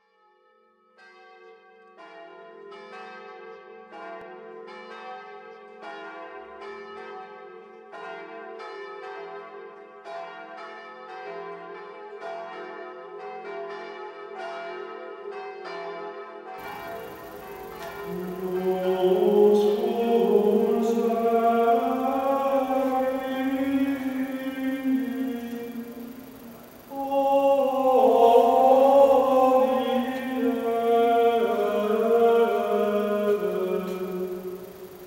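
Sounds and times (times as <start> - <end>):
church bells ringing: 0.2 - 35.0
voices chanting: 16.6 - 35.0.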